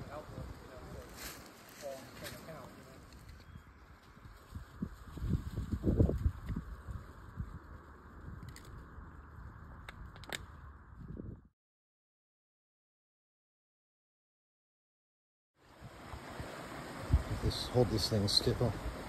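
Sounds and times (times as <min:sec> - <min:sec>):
outdoor hiss: 0:15.6 - 0:19.0.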